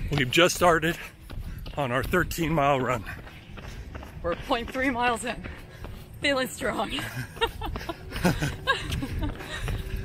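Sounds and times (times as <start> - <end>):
man and woman laughing: 6.9 - 10.0.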